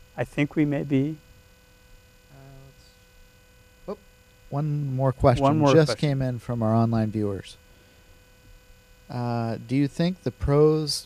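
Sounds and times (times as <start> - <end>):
electrical mains hum: 0.0 - 11.0
man speaking: 4.6 - 7.5, 9.1 - 11.0.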